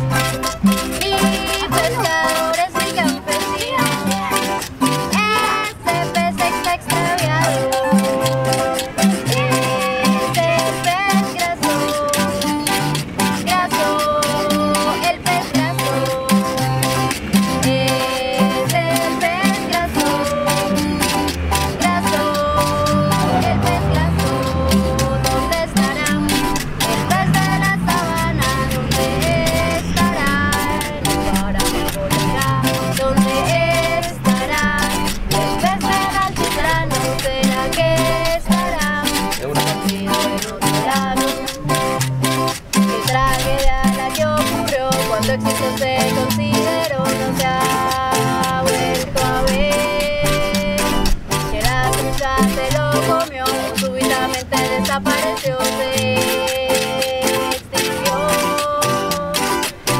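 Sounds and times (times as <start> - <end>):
person singing: 0.0 - 59.9
small string instruments: 0.0 - 59.9
strummed acoustic guitars: 0.0 - 59.9.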